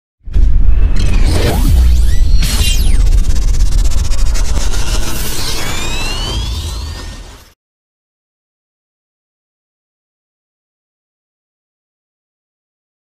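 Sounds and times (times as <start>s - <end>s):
deep rumble: 0.2s - 7.5s
whooshes: 0.3s - 7.6s
falling sweep: 0.4s - 7.6s
rising tones: 0.4s - 7.6s.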